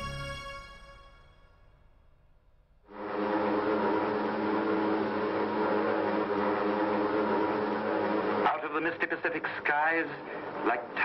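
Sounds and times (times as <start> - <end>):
aircraft engines droning: 2.7 - 11.0.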